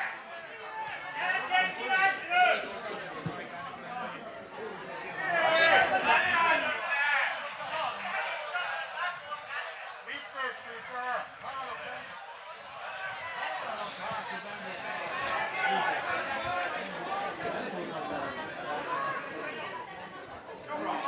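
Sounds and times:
voices talking and calling out: 0.0 - 21.0.

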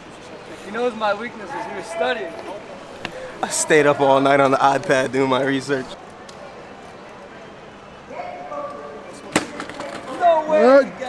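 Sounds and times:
low street background: 0.0 - 11.0.

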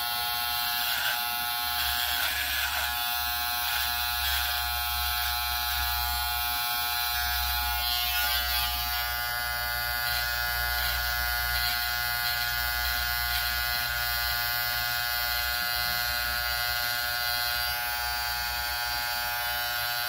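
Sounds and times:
electric hair clipper humming: 0.0 - 20.0.

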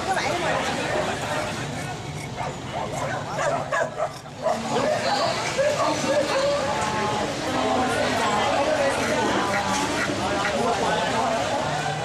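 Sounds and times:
crowd chatter: 0.0 - 12.0
dogs barking: 2.2 - 6.1.

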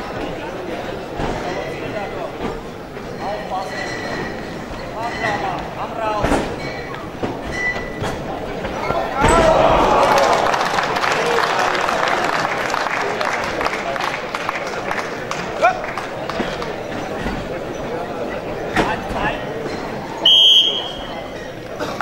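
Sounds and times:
crowd shouting and cheering: 8.6 - 16.7
referee's whistle: 20.2 - 21.3.

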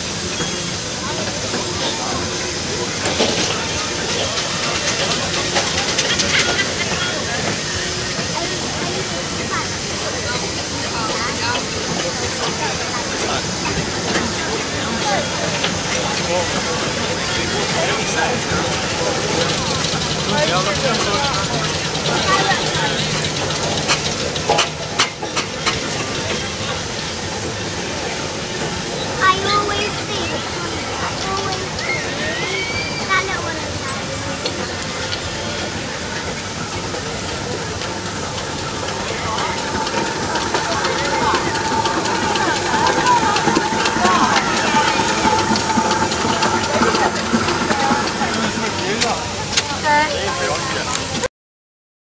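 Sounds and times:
people talking: 0.0 - 51.3
steam engines hissing: 0.0 - 51.3
steady high tone: 38.1 - 50.8.

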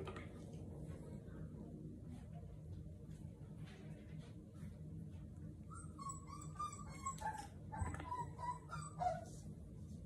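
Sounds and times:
puppies whimpering and yipping: 5.7 - 9.4.

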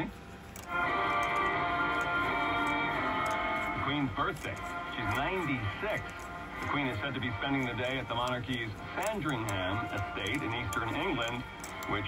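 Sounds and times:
held ringing chord: 0.6 - 12.0.

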